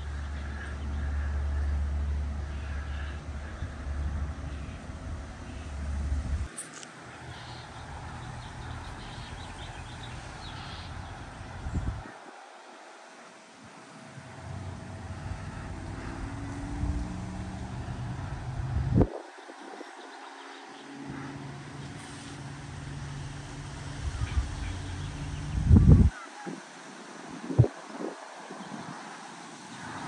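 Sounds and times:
wind hissing through leaves: 0:00.0 - 0:30.0
wind buffeting microphone: 0:03.2 - 0:12.7, 0:14.3 - 0:20.4, 0:22.6 - 0:30.0.

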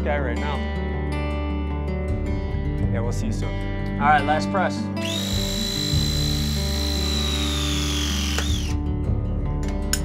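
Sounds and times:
press tool motor whine: 0:05.0 - 0:08.8.

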